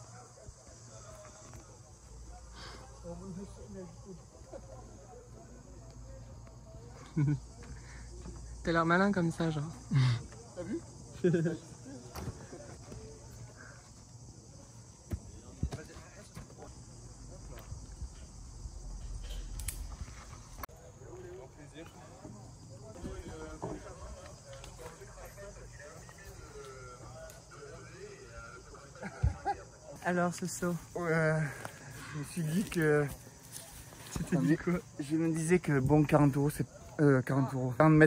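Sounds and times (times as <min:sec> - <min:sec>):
faint indistinct voices: 0:00.0 - 0:08.6, 0:20.6 - 0:30.0
quiet outdoor ambience: 0:00.0 - 0:38.0.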